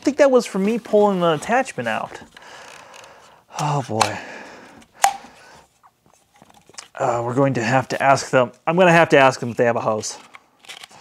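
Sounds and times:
plastic pieces snapping together: 0:05.0 - 0:05.2.

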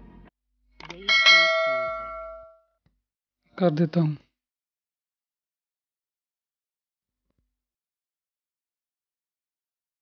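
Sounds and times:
notification bell ding: 0:01.0 - 0:02.6.

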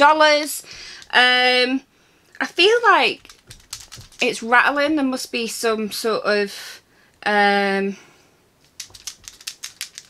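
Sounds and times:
container rattling when shaken: 0:03.1 - 0:04.4, 0:08.6 - 0:10.0.

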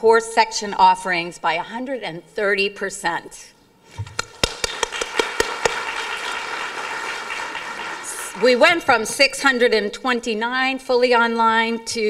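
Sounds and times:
sharp handclaps close up: 0:04.1 - 0:08.6
audience clapping: 0:04.1 - 0:09.1.

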